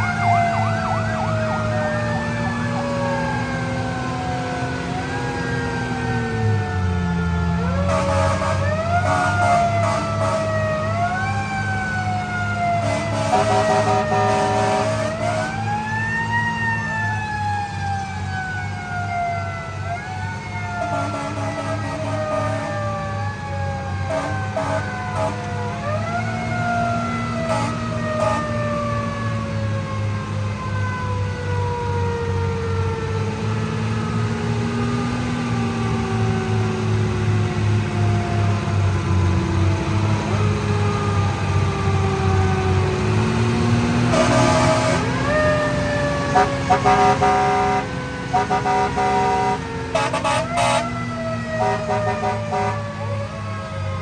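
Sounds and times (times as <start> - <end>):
fire engine engine running: 0.0 - 54.0
mechanical siren wailing: 0.0 - 54.0.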